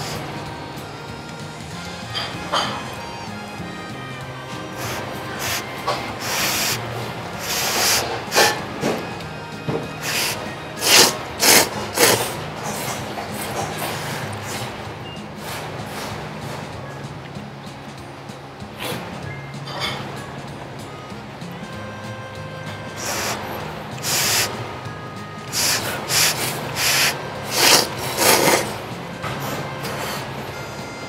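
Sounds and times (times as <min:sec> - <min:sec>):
background music: 0:00.0 - 0:31.0
person slurping noodles: 0:10.1 - 0:12.4, 0:25.6 - 0:28.8.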